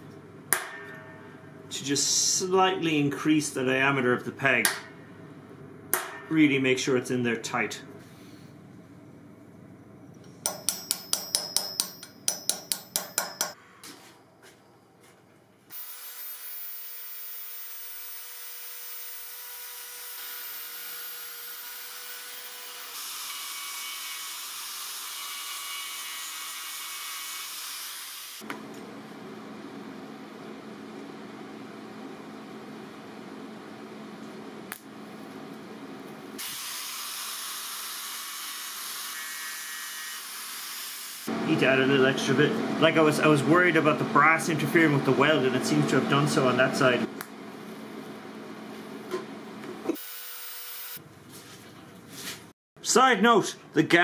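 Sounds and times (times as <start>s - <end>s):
electric welding arc: 15.7s - 28.4s, 36.4s - 41.3s, 50.0s - 51.0s.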